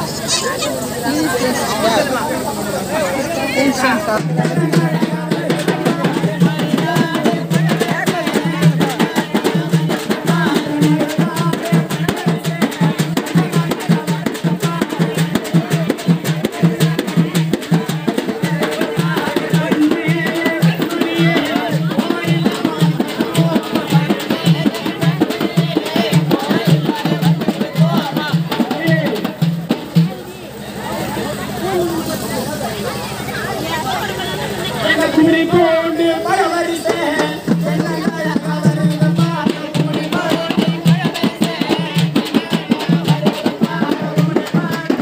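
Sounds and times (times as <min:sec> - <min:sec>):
hand drums beating fast rhythm: 0:00.0 - 0:45.0
man singing into a microphone: 0:02.9 - 0:29.8, 0:34.8 - 0:45.0.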